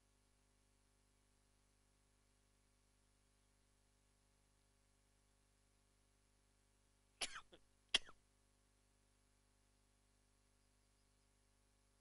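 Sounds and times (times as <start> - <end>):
man coughing: 7.2 - 8.1.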